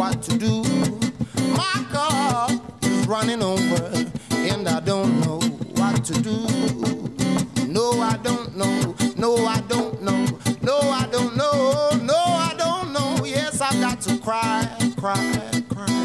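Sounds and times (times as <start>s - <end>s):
acoustic guitar strumming: 0.0s - 16.0s
man singing: 0.0s - 16.0s.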